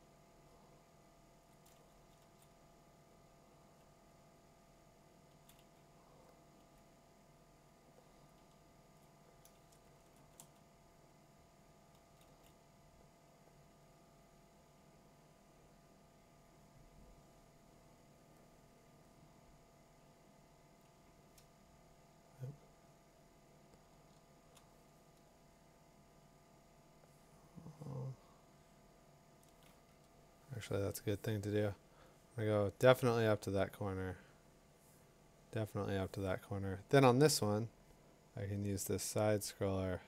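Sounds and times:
faint room hum: 0:00.0 - 0:40.0.

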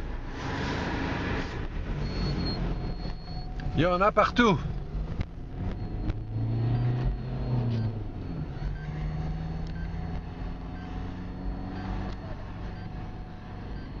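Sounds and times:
vehicle engine running: 0:01.6 - 0:14.0.

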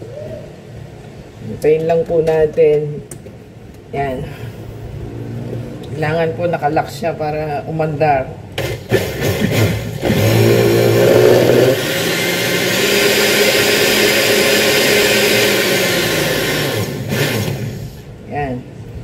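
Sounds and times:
blender motor running: 0:08.6 - 0:18.0.

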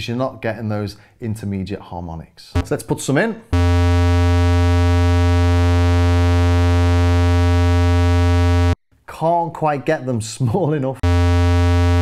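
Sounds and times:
low synthesizer square-wave note: 0:02.6 - 0:02.8, 0:03.5 - 0:08.8, 0:11.0 - 0:12.0.

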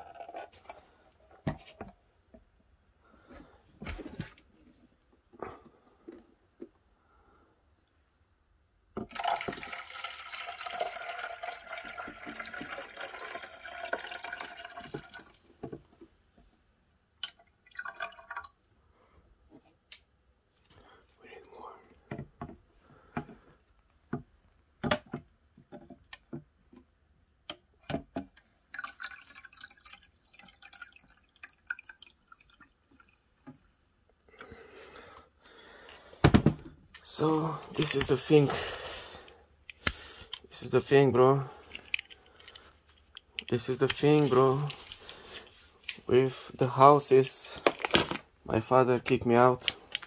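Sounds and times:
water pouring into plastic reservoir: 0:09.0 - 0:15.8, 0:17.2 - 0:18.8, 0:28.5 - 0:34.3, 0:37.0 - 0:38.8.

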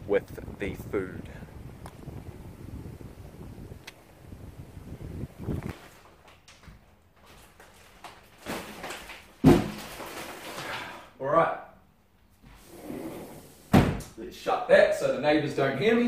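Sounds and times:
wind buffeting microphone: 0:00.0 - 0:05.8
plastic bags rustling: 0:05.8 - 0:11.1
heavy thump of bags set down: 0:08.4 - 0:10.9.

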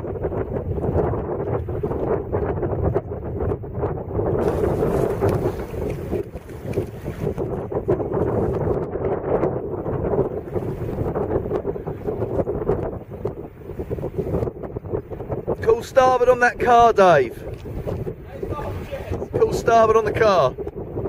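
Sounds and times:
gusty wind buffeting microphone: 0:00.0 - 0:21.0.

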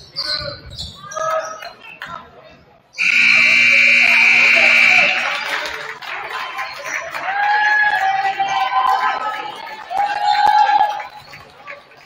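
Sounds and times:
voices in a gym: 0:00.0 - 0:12.0
scoreboard buzzer: 0:03.0 - 0:05.4.

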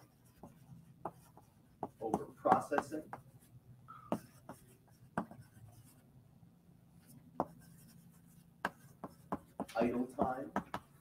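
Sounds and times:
chalk tapping on blackboard: 0:00.0 - 0:03.4, 0:04.1 - 0:06.0, 0:07.4 - 0:11.0
low room hum: 0:00.0 - 0:11.0.

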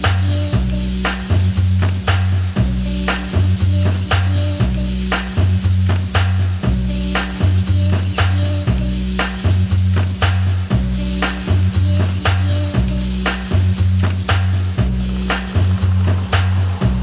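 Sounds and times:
background music with deep bass: 0:00.0 - 0:17.0.

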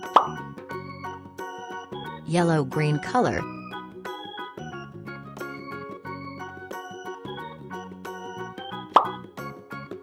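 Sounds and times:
plop sound effect: 0:00.0 - 0:00.4, 0:08.9 - 0:09.2.

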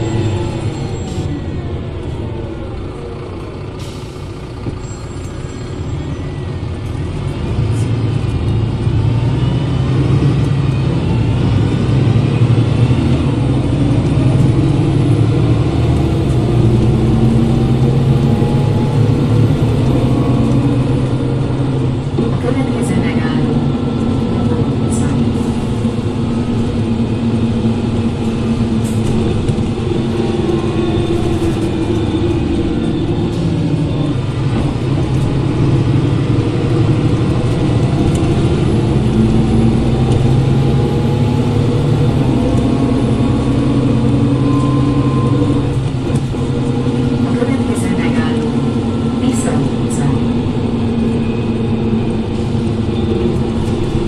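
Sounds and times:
diesel bus engine under load: 0:00.0 - 0:54.0.

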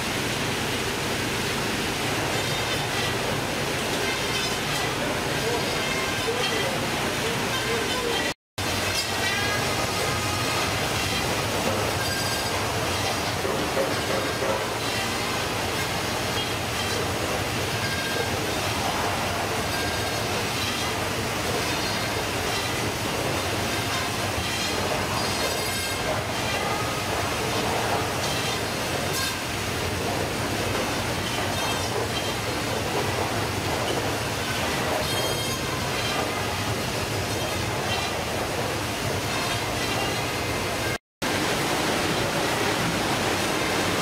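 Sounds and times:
conveyor machine clatter and hum: 0:00.0 - 0:44.0
high squeaks: 0:11.9 - 0:17.1, 0:33.8 - 0:36.7.

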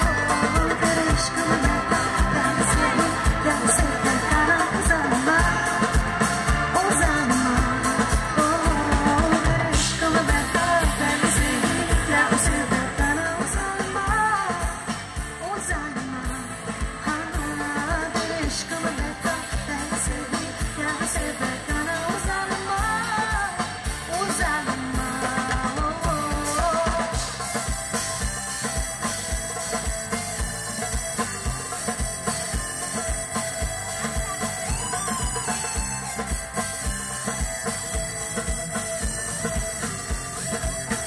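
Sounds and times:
woman singing into a microphone: 0:00.0 - 0:27.5
band playing: 0:00.0 - 0:41.0
steady drum beat: 0:00.0 - 0:41.0.

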